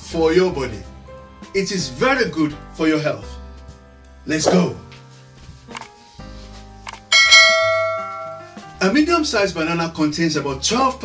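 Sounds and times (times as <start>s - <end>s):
bell strike ringing: 7.1s - 8.6s.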